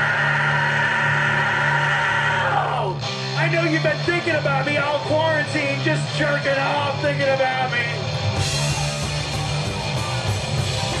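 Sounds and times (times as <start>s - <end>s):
electric guitars and bass chord: 0.0s - 11.0s.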